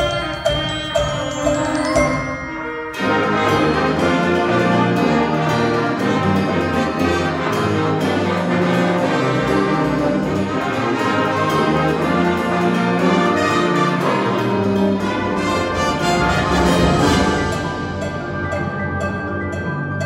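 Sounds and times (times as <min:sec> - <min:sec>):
brass instruments: 0:00.0 - 0:20.0
wind band playing: 0:00.0 - 0:20.0.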